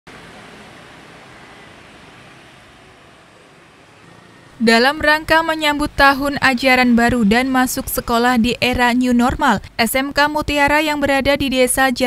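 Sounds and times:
minivan driving past: 0.1s - 8.6s.

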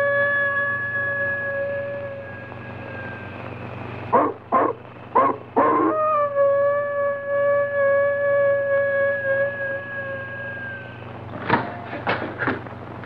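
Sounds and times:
eerie held music note: 0.0s - 3.9s, 6.2s - 11.1s
dog barking: 4.1s - 6.0s.

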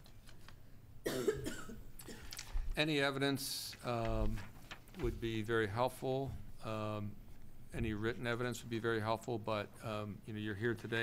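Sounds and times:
person coughing: 1.0s - 2.3s.

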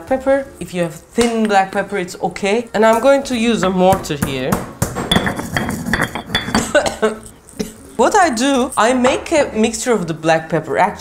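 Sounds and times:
pestle pounding in stone mortar: 3.8s - 6.7s.

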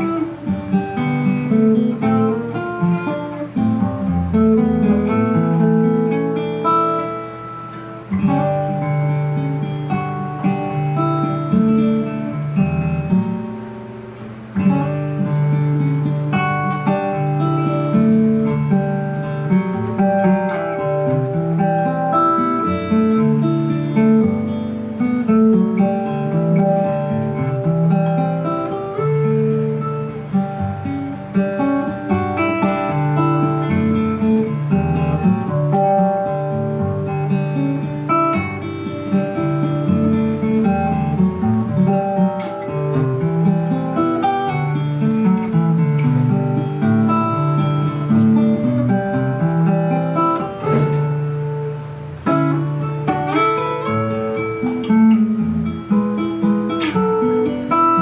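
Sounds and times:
acoustic guitar tune: 0.0s - 58.0s.

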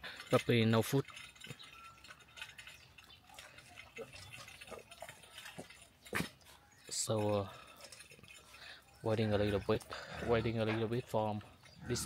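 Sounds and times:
dogs chewing and licking: 0.1s - 10.8s.

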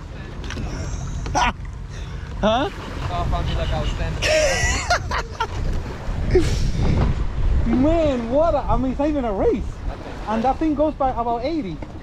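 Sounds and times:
wind buffeting microphone: 2.4s - 12.0s.

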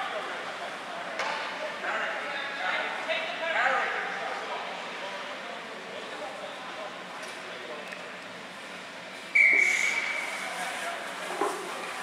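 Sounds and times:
murmur of voices: 0.0s - 12.0s
referee's whistle blast: 9.4s - 10.2s.

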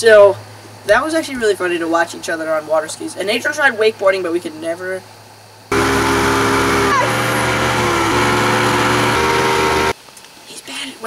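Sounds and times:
wind and water hiss: 0.0s - 5.7s, 10.0s - 11.0s
motorboat engine running: 5.7s - 9.9s.

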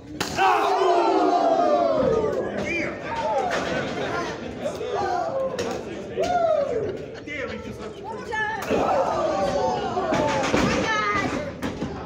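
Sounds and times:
crowd yelling: 0.2s - 3.8s, 8.6s - 10.7s.

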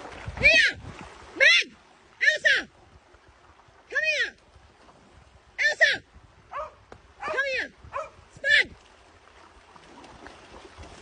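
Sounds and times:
dog barking: 6.5s - 8.2s.

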